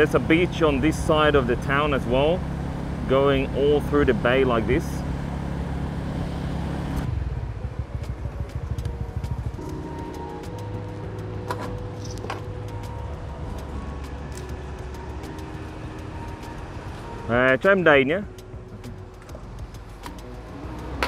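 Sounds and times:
motorbike engine running: 0.0s - 21.0s
scattered clicks: 7.9s - 9.8s
background music: 8.0s - 21.0s
held tones changing pitch: 9.5s - 19.1s.

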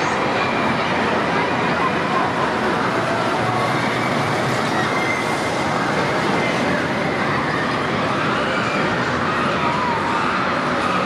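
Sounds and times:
busy amusement hall din: 0.0s - 11.0s
faint voices: 0.0s - 11.0s.

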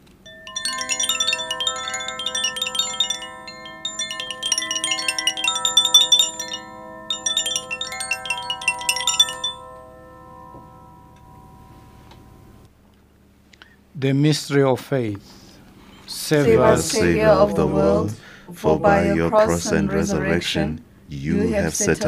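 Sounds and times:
altar bells ringing: 0.0s - 12.7s.

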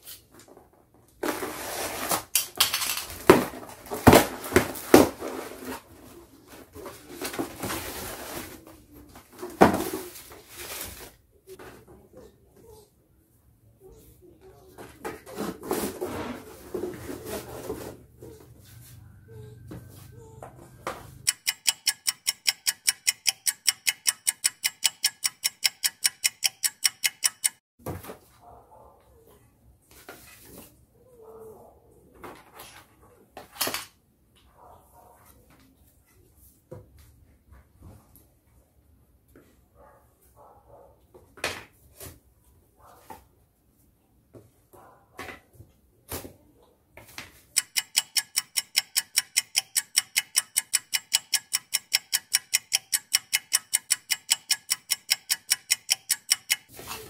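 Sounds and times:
clock ticking: 21.2s - 27.6s, 47.6s - 56.9s.

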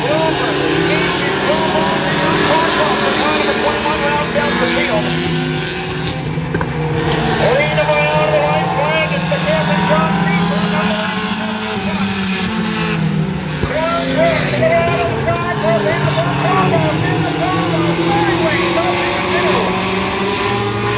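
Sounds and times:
person talking: 0.0s - 5.3s, 7.2s - 12.2s, 13.6s - 19.8s
race car engines droning: 0.0s - 20.9s.

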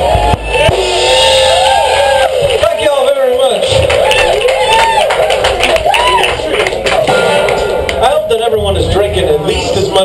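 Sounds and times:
rock band playing loudly: 6.5s - 9.6s.

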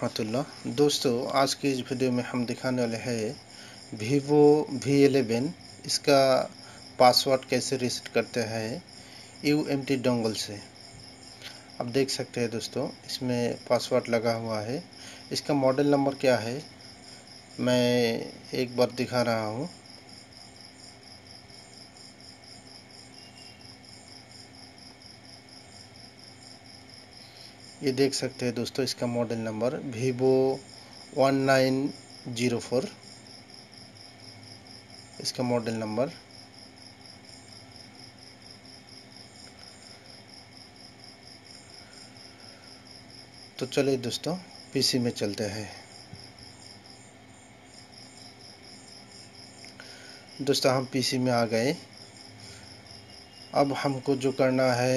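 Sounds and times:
cricket chirping: 0.0s - 54.9s
faint low hum: 0.0s - 54.9s.

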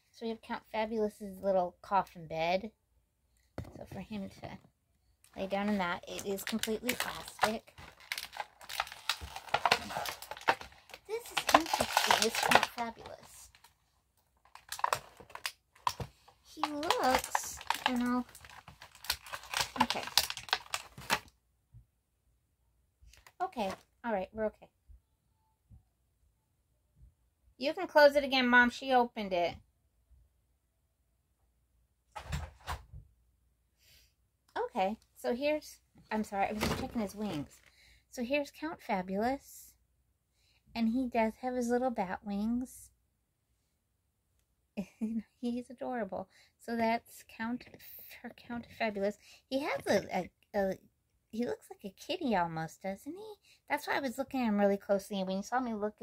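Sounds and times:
plastic clicks and crinkles: 5.3s - 21.4s.

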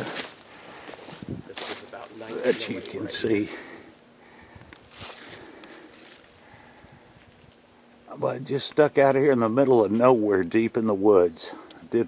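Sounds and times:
footsteps in dry leaves: 0.0s - 3.2s, 4.9s - 6.4s.

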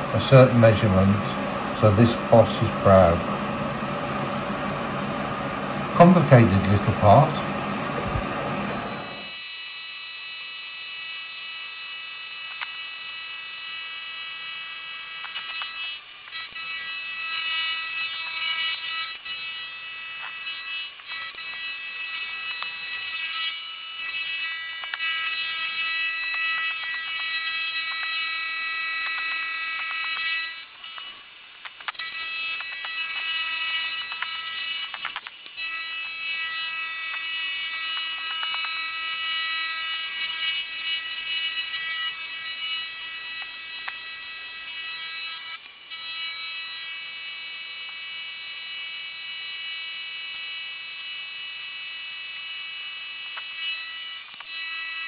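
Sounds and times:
milling machine cutting whine: 0.0s - 49.3s.

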